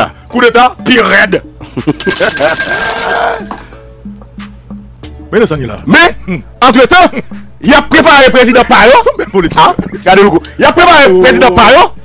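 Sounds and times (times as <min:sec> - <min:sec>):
alarm-like ringing: 0:02.0 - 0:04.2.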